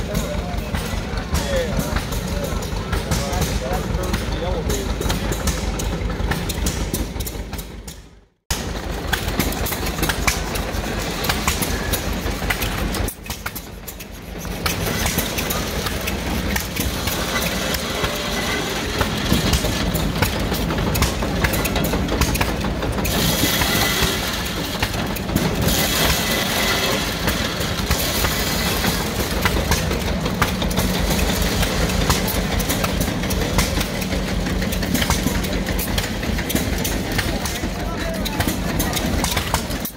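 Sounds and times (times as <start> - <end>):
corn sheller clatter and rattle: 0.0 - 39.9.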